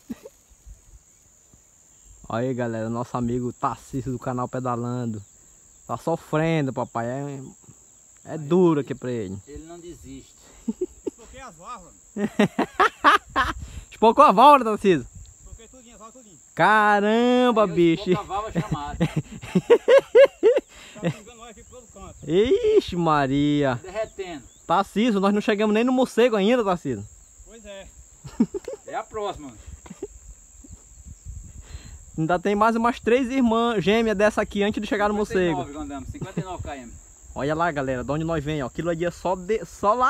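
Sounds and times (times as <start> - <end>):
man laughing: 0.0 - 0.4, 10.4 - 11.6, 12.2 - 13.6, 17.7 - 21.4, 28.2 - 30.8, 36.1 - 36.8
high-pitched insect drone: 0.0 - 40.0
wind rumble on microphone: 13.2 - 14.0, 15.0 - 15.9, 29.5 - 32.2.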